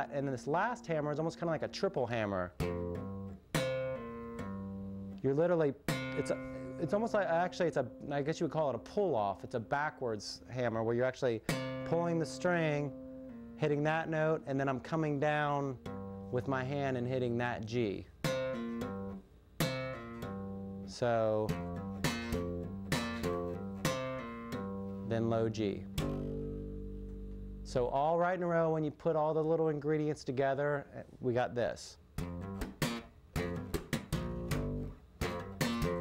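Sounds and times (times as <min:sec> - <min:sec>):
electric bass guitar notes: 0:00.0 - 0:28.1, 0:32.2 - 0:36.0
bass guitar funk groove: 0:25.9 - 0:27.7, 0:32.2 - 0:36.0.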